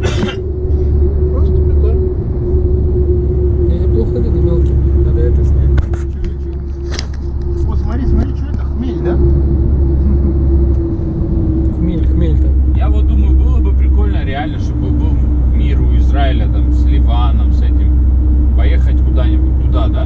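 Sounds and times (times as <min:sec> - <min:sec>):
people talking: 0:00.0 - 0:00.4, 0:01.3 - 0:02.1, 0:03.6 - 0:09.4, 0:10.0 - 0:10.4, 0:11.7 - 0:20.0
car cabin road rumble: 0:00.0 - 0:20.0
constant hum: 0:00.0 - 0:20.0.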